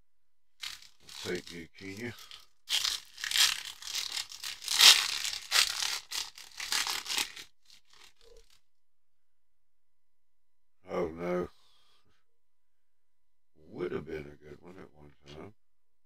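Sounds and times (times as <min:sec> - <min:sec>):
foil wrapper tearing and crinkling: 0:00.6 - 0:08.6.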